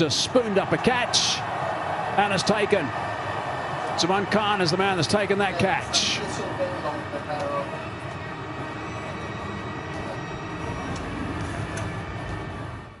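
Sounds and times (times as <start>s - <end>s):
stadium crowd din: 0.0s - 12.8s.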